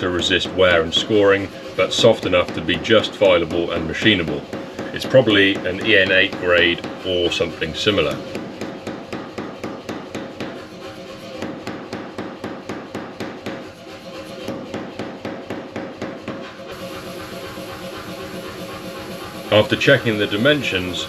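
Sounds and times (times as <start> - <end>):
hammer blows on hot steel: 0.0 - 21.0.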